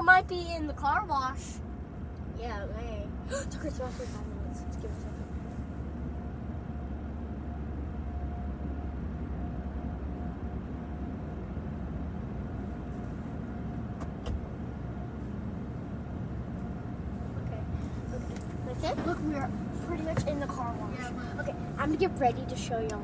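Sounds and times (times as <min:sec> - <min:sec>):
car engine rumbling: 0:00.0 - 0:23.0
faint steady hum: 0:00.0 - 0:23.0.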